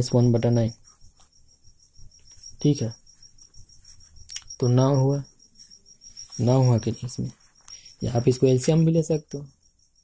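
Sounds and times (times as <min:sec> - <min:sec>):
steady high-pitched whine: 0:00.0 - 0:10.0
pen writing on notebook: 0:00.7 - 0:04.3.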